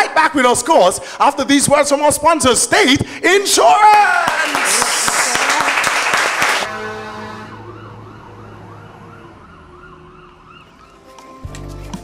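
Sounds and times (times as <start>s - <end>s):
audience clapping: 3.8s - 6.8s
fire truck siren wailing: 6.5s - 11.2s.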